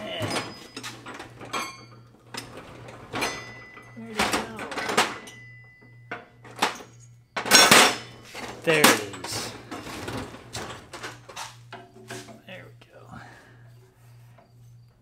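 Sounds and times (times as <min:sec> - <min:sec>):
metal tools clattering: 0:00.0 - 0:12.5.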